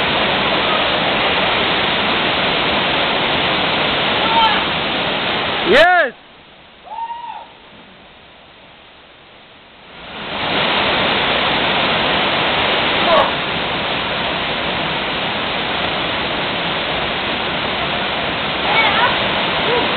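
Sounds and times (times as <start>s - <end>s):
waterfall rushing into pool: 0.0s - 19.9s
short human calls: 6.8s - 7.6s.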